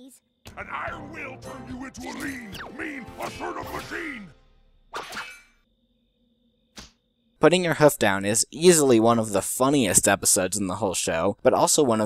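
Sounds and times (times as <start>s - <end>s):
brief swish: 4.9s - 5.6s.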